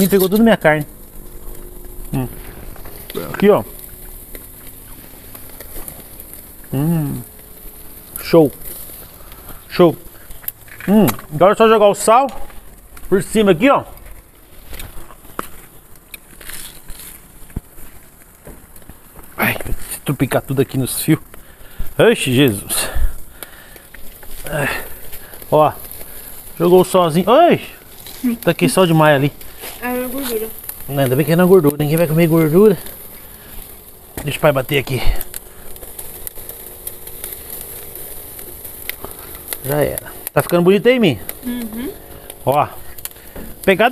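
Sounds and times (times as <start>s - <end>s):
salt crackling on grilling meat: 0.0s - 43.9s.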